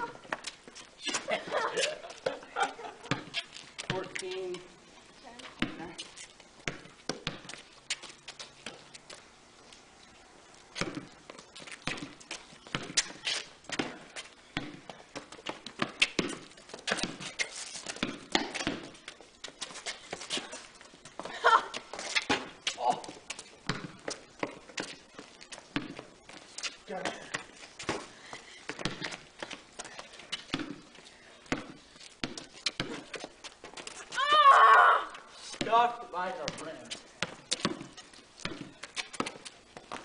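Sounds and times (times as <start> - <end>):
running footsteps on concrete: 0.0 - 4.7, 10.6 - 40.0
basketball bouncing on concrete: 2.3 - 4.7, 5.4 - 8.9, 10.8 - 34.5, 35.5 - 40.0.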